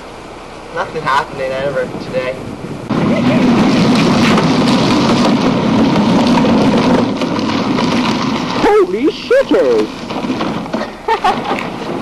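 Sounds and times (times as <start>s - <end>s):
plastic wheels rattling on asphalt: 2.2s - 12.0s.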